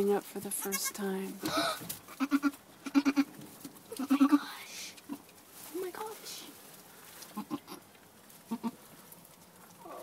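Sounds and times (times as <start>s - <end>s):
goats bleating softly: 0.5s - 4.4s, 7.3s - 8.9s.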